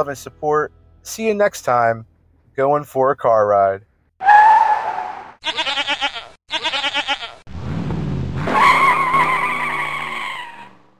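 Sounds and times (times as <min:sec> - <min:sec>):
tire squeal: 0:04.2 - 0:05.4, 0:08.4 - 0:10.9
goat bleats: 0:05.4 - 0:07.4
engine revving: 0:07.5 - 0:10.9.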